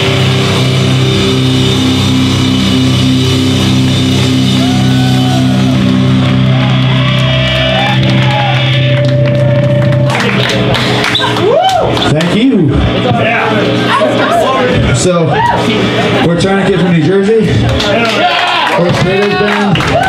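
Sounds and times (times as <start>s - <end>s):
wavering guitar tones: 0.0s - 18.0s
distorted electric guitars and bass: 0.0s - 20.0s.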